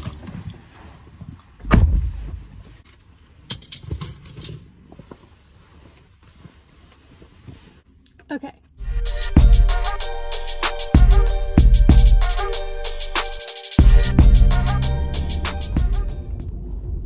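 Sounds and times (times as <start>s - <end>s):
heavy thump in car: 1.6s - 2.6s.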